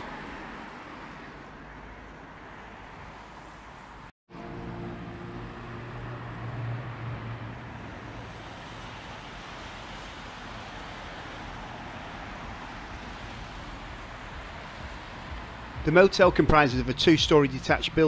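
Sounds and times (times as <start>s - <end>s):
tyres hissing on wet road: 0.0s - 4.1s, 5.3s - 18.0s
cars passing: 0.0s - 18.0s
vehicle engine hum: 0.0s - 18.0s.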